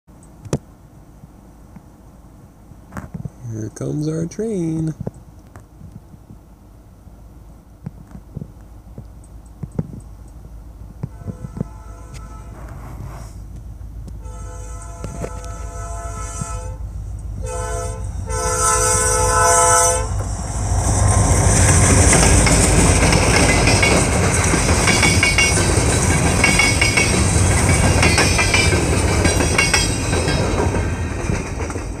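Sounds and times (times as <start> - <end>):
diesel locomotive engine rumble: 10.0 - 32.0
train horn blasts: 11.1 - 13.0, 14.2 - 20.2
train wheels clattering on rails: 20.1 - 32.0.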